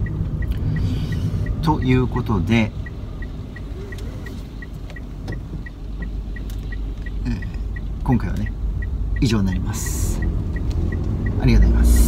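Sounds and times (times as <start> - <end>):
car turn signal ticking: 0.0 - 12.0
low rumble of car cabin: 0.0 - 12.0.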